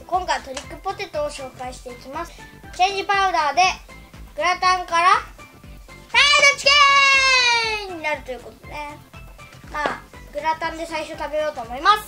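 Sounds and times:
child calling sing-song: 6.1 - 9.0.

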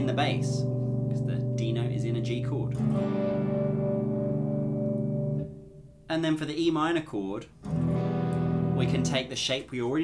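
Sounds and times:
electric guitar chord ringing: 0.0 - 6.1, 7.6 - 9.2.

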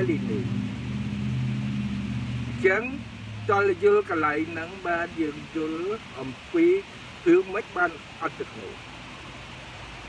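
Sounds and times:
man speaking: 0.0 - 0.5, 2.6 - 8.8
low mechanical hum: 0.0 - 4.8.

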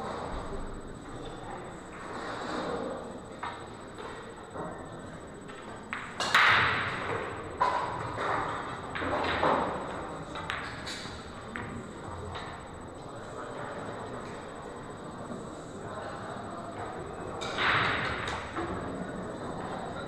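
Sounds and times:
faint voices: 7.3 - 20.0.

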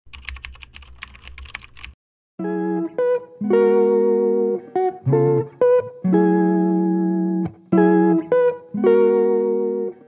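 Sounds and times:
keyboard typing: 0.1 - 2.0.

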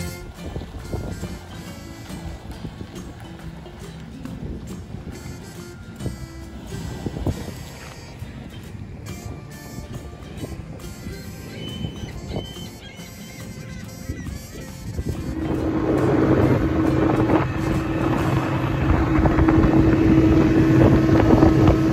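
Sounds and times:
background music: 0.0 - 21.9.

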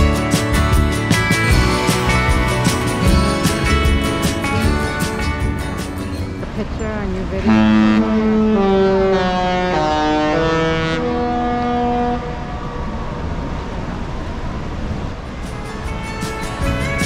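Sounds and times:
background guitar music: 0.0 - 8.2, 15.3 - 17.0
outdoor noise: 0.0 - 17.0
ship's musical horn: 7.3 - 12.8.

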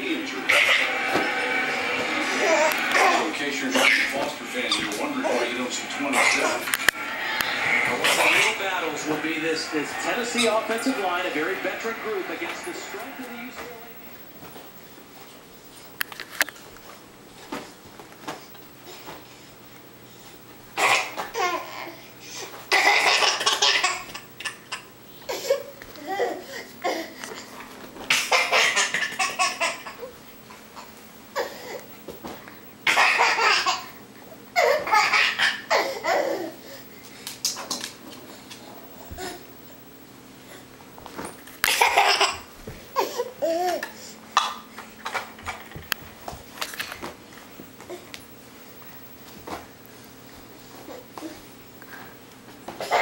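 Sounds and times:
high squealing laugh: 0.4 - 5.4, 6.1 - 9.0, 9.7 - 12.0
toddler belly laughing: 2.2 - 5.4, 20.8 - 22.0, 22.7 - 27.1, 28.1 - 30.1, 32.9 - 34.0, 34.6 - 36.7, 41.7 - 44.0.

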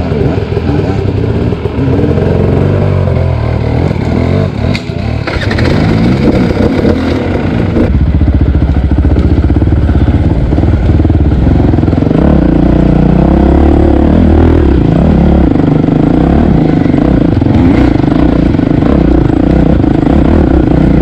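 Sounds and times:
dirt bike engine revving: 0.0 - 21.0.

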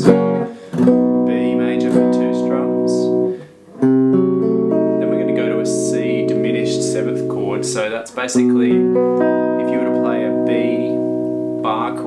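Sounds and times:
electric guitar strumming chords: 0.0 - 12.0.

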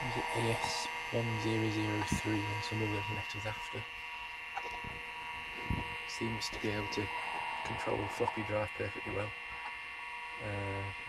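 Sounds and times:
computer hard drive whine and hum: 0.0 - 11.0.

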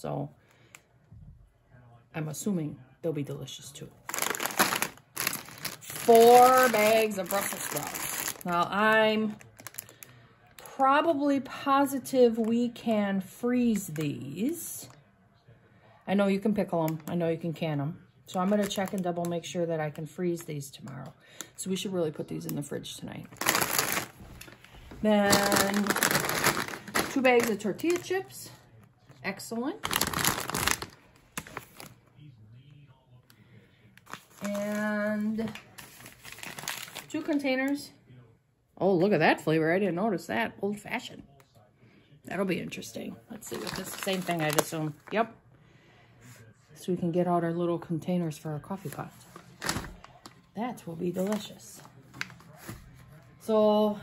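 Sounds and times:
plastic snack bag crinkling: 4.0 - 10.7, 18.4 - 19.4, 23.2 - 28.4, 29.8 - 32.0, 34.0 - 37.4, 43.4 - 45.1, 48.8 - 50.3, 51.1 - 52.7.

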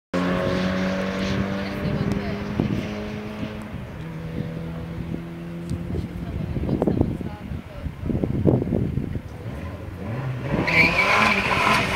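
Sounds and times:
car engines running: 0.2 - 11.9.

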